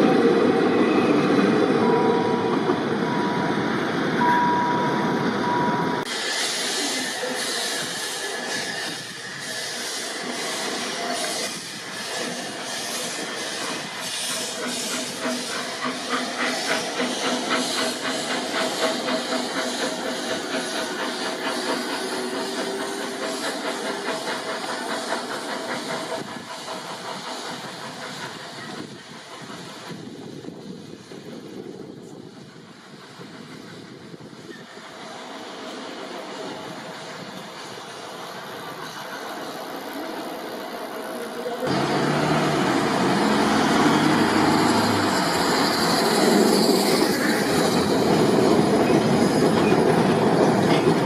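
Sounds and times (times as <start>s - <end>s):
carriages rolling on rails: 0.0s - 51.0s
steam hissing: 5.1s - 51.0s
steam locomotive exhaust chuffs: 5.4s - 51.0s.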